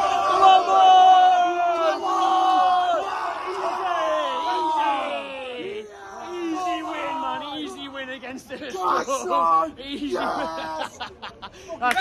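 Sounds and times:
men yelling celebratory shouts: 0.0s - 11.0s.

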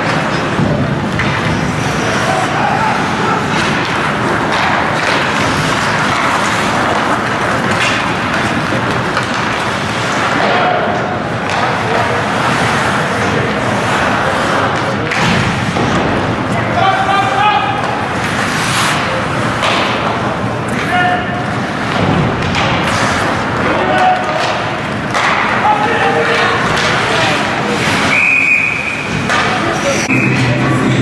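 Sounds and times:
sticks and puck hitting boards: 0.0s - 30.6s
people shouting in arena: 2.0s - 3.8s
referee's whistle blast: 28.1s - 29.1s.

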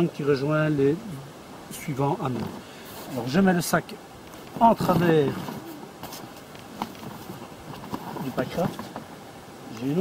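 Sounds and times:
backpack rustling: 4.3s - 9.1s.

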